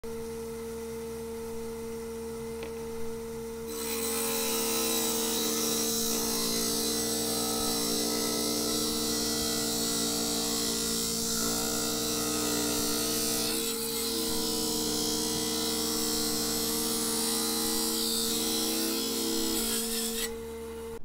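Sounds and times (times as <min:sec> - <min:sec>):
saw blade humming: 0:02.6 - 0:21.0
saw grinding through stone: 0:03.7 - 0:21.0.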